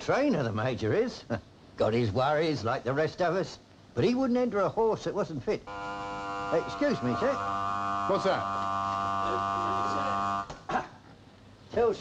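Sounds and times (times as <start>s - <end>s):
electric alarm buzzer: 5.7s - 10.6s.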